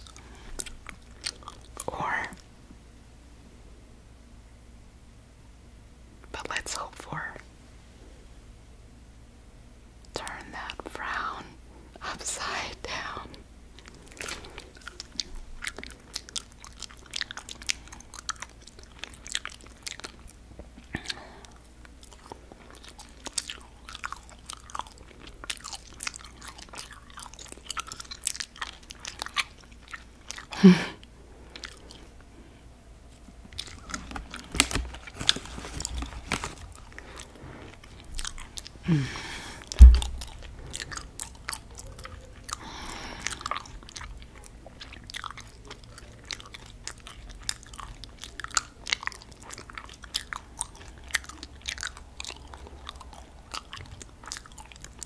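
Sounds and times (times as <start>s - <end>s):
chewing gummy candy: 0.0s - 2.5s, 10.1s - 55.0s
person humming: 38.9s - 40.2s.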